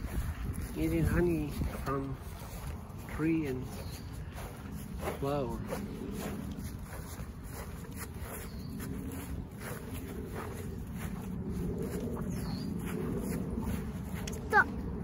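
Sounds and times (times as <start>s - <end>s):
footsteps through grass: 0.0s - 15.0s
wind rumble on microphone: 0.0s - 15.0s.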